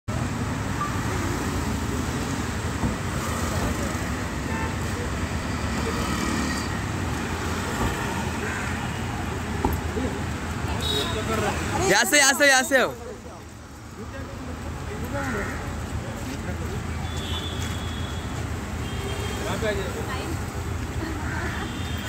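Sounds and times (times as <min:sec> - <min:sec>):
vehicle engines passing: 0:00.1 - 0:22.0.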